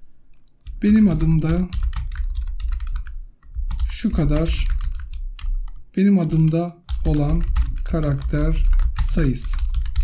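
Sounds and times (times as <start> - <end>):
computer keyboard typing: 0.6 - 10.0.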